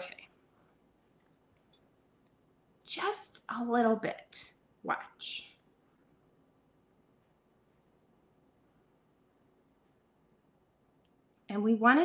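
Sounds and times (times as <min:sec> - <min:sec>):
woman speaking: 0:00.0 - 0:00.3, 0:02.8 - 0:05.6, 0:11.5 - 0:12.0.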